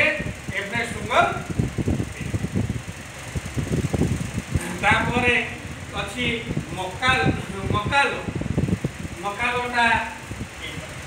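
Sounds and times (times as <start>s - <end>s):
fan air buffeting microphone: 0.0s - 11.0s.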